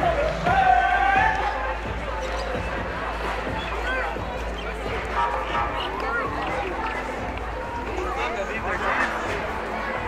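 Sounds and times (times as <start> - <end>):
crowd hubbub: 0.0 - 10.0
footsteps: 1.2 - 10.0.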